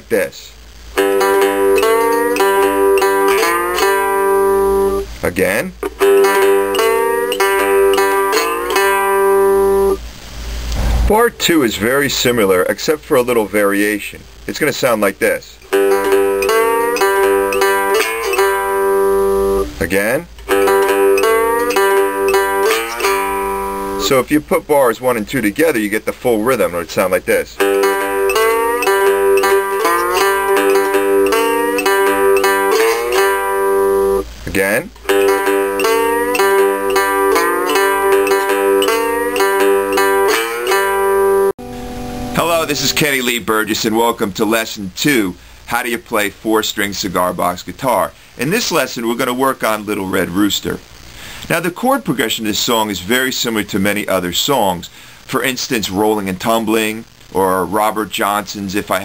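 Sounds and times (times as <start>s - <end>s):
cigar box guitar blues pattern: 0.0s - 10.1s, 15.2s - 47.1s.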